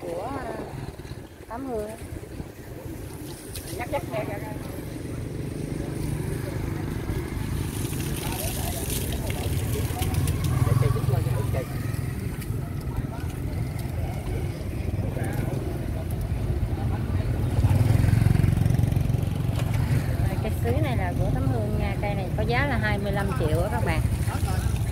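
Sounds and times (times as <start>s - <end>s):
motorbikes passing: 0.0s - 24.9s.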